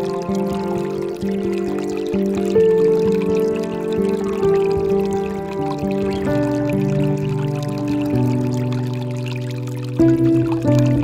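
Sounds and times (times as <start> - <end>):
slow relaxation music: 0.0 - 11.0
water pouring from fountain spout: 0.0 - 11.0.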